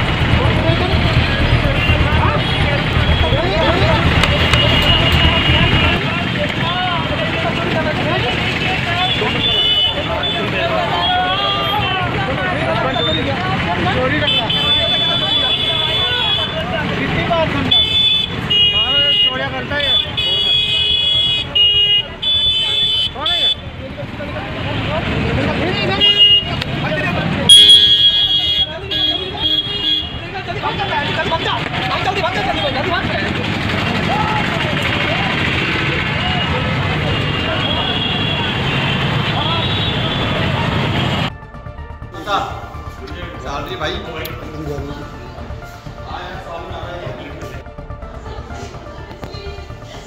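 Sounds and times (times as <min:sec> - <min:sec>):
traffic noise: 0:00.0 - 0:50.0
high-pitched vehicle horn honks: 0:17.7 - 0:23.6, 0:26.0 - 0:26.6, 0:27.5 - 0:30.2
men arguing: 0:28.1 - 0:38.0.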